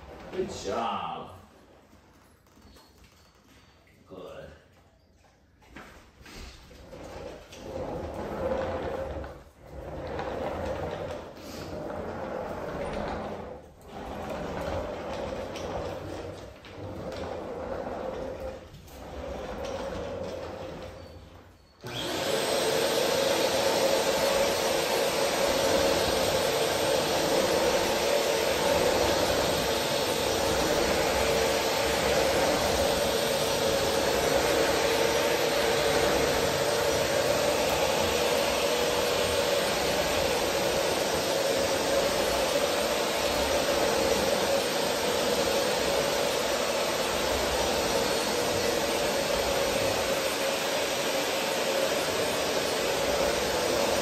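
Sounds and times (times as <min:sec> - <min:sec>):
vacuum cleaner running on wood floor: 0:00.0 - 0:01.0, 0:06.3 - 0:54.0.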